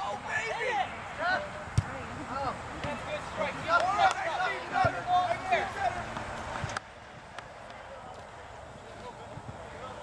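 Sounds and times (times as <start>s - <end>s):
players shouting calls: 0.0s - 10.0s.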